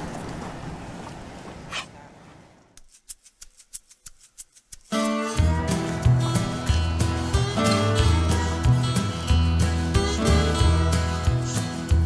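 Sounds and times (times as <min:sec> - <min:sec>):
outdoor background noise: 0:00.0 - 0:08.0
rattle clicking: 0:02.8 - 0:05.2.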